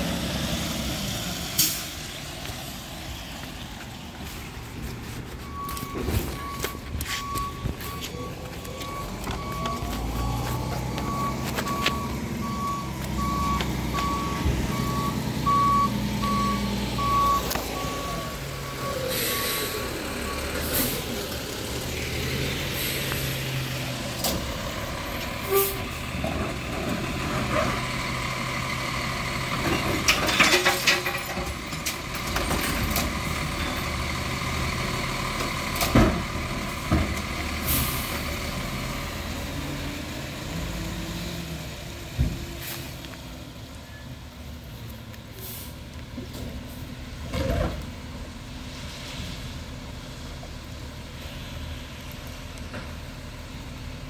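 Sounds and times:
reversing alarm beeping: 5.4 - 20.6
clanks and bangs of carts: 29.6 - 33.8.

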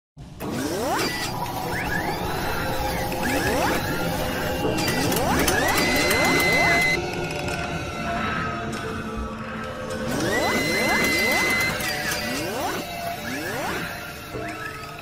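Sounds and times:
rising robotic servo whines: 0.4 - 7.0, 10.1 - 15.0
mechanical whirring and clicking: 0.4 - 7.7, 9.9 - 15.0.

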